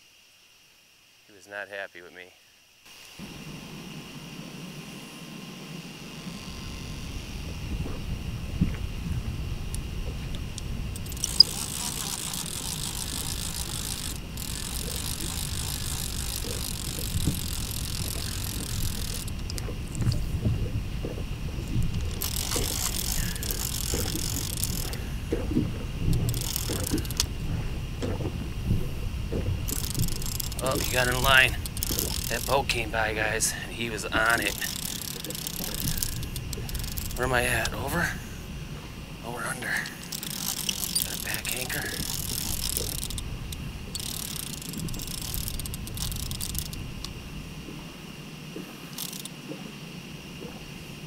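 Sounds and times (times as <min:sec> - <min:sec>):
steady low rumble: 0:03.2 - 0:49.5
fishing reel ratcheting: 0:10.9 - 0:20.2, 0:21.8 - 0:25.1, 0:26.0 - 0:27.3, 0:29.7 - 0:37.9, 0:39.8 - 0:47.1, 0:48.9 - 0:49.3.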